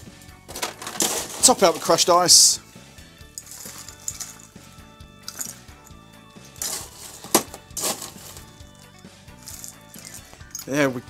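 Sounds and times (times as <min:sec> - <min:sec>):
ice scoop scraping and clinking: 0:00.4 - 0:02.4, 0:03.4 - 0:04.6, 0:05.3 - 0:05.6, 0:06.4 - 0:10.8.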